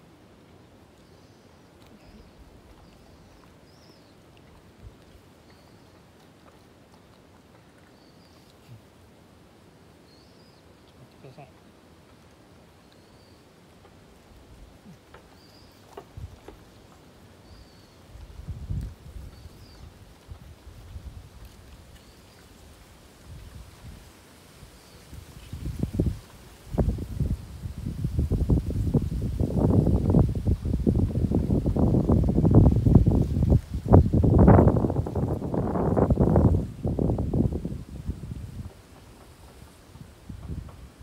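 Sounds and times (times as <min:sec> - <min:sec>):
wind buffeting microphone: 0:15.9 - 0:16.7, 0:17.4 - 0:41.0.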